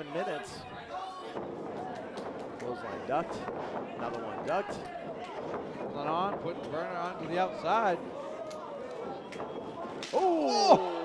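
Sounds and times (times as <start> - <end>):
audience murmur and chatter: 0.0 - 11.0.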